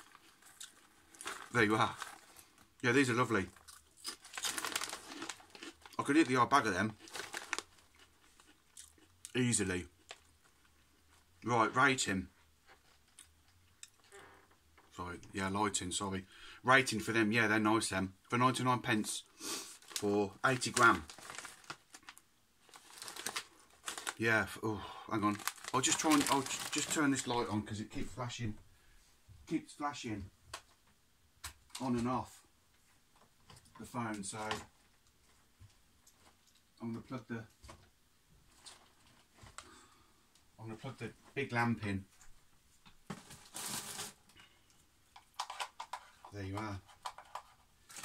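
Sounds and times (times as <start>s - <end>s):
crisp packet crinkling: 0.0s - 9.4s, 19.7s - 24.5s, 25.1s - 27.4s, 43.1s - 44.3s, 45.2s - 48.0s.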